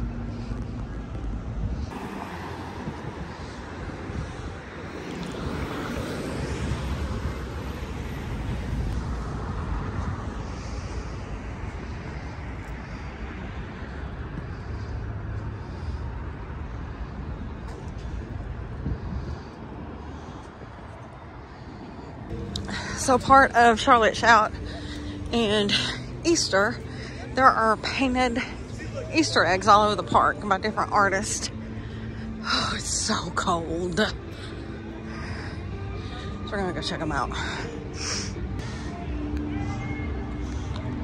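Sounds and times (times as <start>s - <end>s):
wind buffeting microphone: 0.0s - 30.9s
traffic rush: 0.0s - 41.0s.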